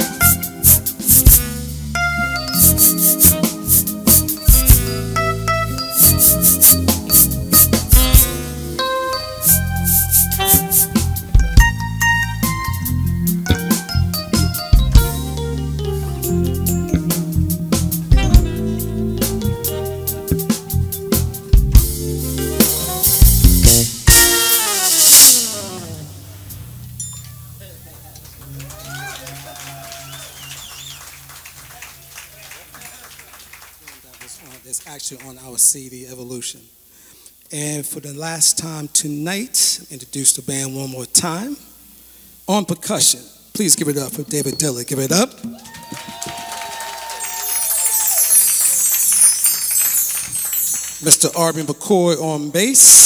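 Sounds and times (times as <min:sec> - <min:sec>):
jazz band final crash and chord: 0:00.0 - 0:29.7
high metallic chimes: 0:02.2 - 0:08.2, 0:08.9 - 0:11.0, 0:25.0 - 0:28.1, 0:47.2 - 0:51.9.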